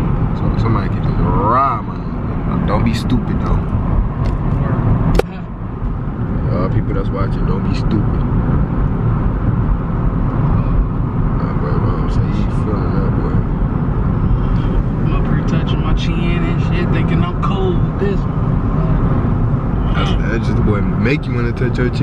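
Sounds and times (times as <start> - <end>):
car engine and tyre rumble: 0.0 - 22.0.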